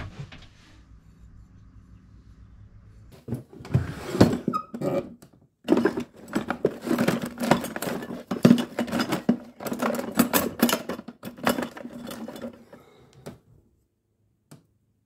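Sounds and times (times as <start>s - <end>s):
hand tools clinking in a drawer: 4.2s - 12.9s.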